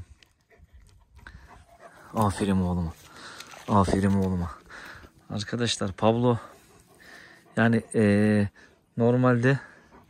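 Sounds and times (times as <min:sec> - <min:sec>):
dog panting: 0:00.2 - 0:10.0.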